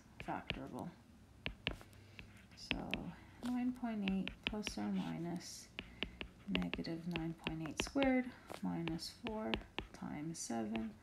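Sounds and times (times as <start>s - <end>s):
faint steady hum: 0.0s - 11.0s
stylus tapping on tablet screen: 0.2s - 0.8s, 1.4s - 5.1s, 5.7s - 10.0s, 10.6s - 11.0s
person speaking softly: 2.5s - 5.7s.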